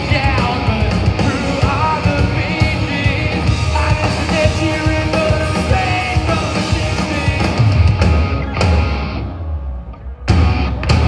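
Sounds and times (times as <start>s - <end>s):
live punk rock band: 0.0s - 11.0s.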